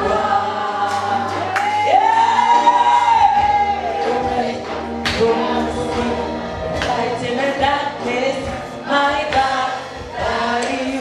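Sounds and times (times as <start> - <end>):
group singing gospel song: 0.0 - 11.0.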